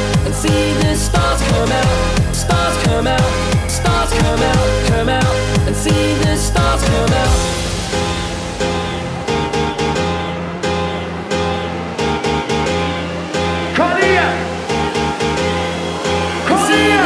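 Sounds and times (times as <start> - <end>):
hardcore dance music: 0.0 - 17.0
rising pitch sweep: 1.6 - 17.0.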